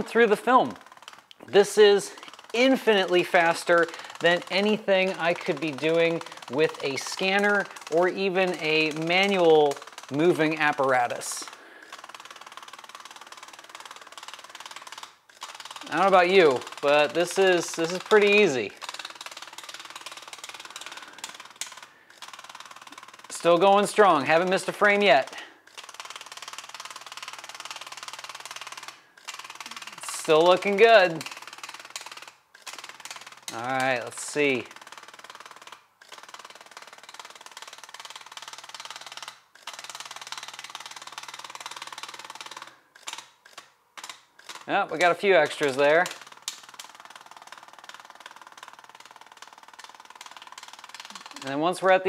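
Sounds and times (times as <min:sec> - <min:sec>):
fast mechanical ticking: 0:00.0 - 0:52.0
motor buzzing rattle: 0:00.0 - 0:52.0.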